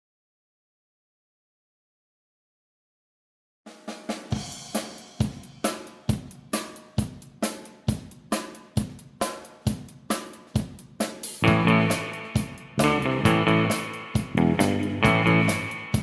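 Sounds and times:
drum kit beat: 0:03.7 - 0:16.0.

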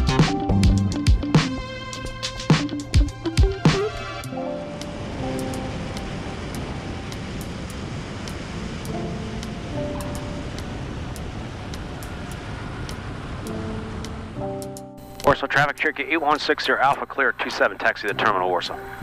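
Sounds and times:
aircraft engine noise: 0:00.0 - 0:19.0
background music: 0:00.0 - 0:19.0
wind rushing: 0:01.2 - 0:15.1.

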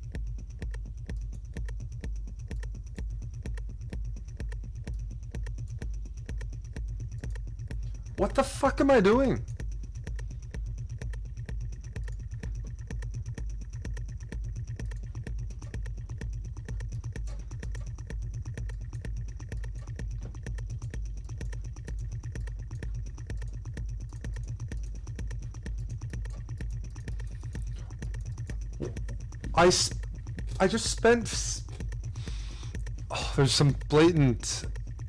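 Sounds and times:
techno music with pulsing bass: 0:00.0 - 0:35.0.

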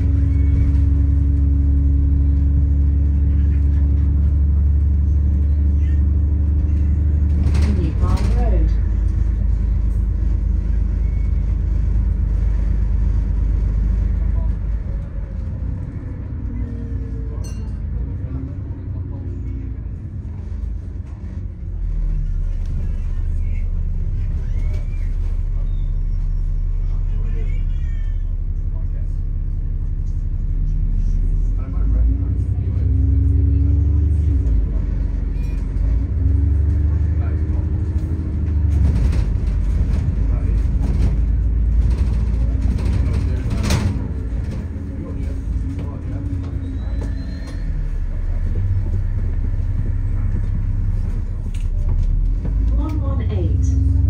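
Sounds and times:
bus body rattles: 0:00.0 - 0:54.0
bus engine rumble: 0:00.0 - 0:54.0.

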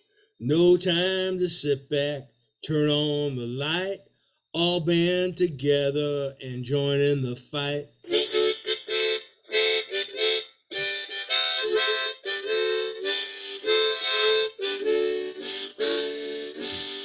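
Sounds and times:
harmonica playing: 0:08.0 - 0:17.0.

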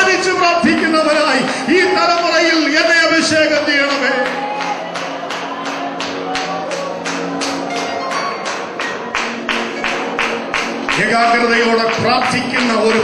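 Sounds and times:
worship music: 0:00.0 - 0:13.0
sung or spoken prayer: 0:10.9 - 0:13.0.

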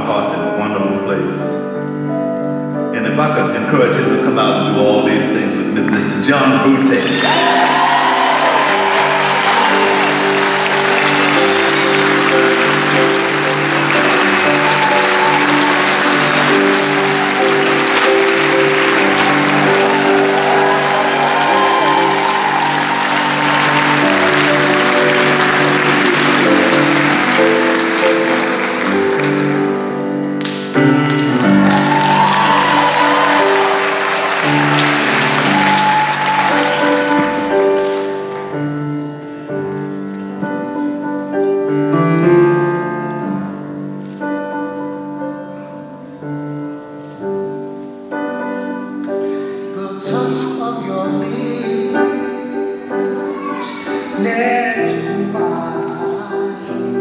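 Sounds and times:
slow piano playing: 0:00.0 - 0:57.0
audience applause: 0:06.8 - 0:38.8.

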